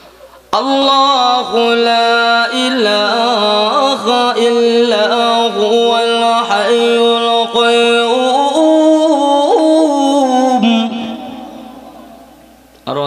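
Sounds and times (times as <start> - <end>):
man chanting through loudspeakers: 0.5 - 13.0.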